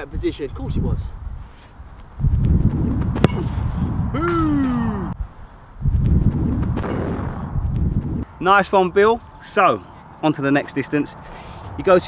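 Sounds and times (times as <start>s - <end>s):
wind rumbling on microphone: 0.0s - 8.3s
falling vocal whoop: 4.1s - 5.2s.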